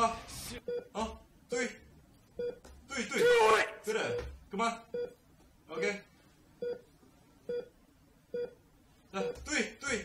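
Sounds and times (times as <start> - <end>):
heart monitor beeps: 2.4 - 2.7, 4.0 - 5.2, 6.6 - 6.9, 7.5 - 7.7, 8.3 - 8.6.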